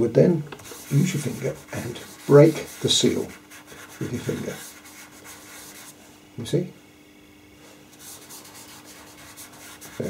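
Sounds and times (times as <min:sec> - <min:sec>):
fingertip rubbing pastel on paper: 0:00.6 - 0:06.0, 0:08.0 - 0:10.0.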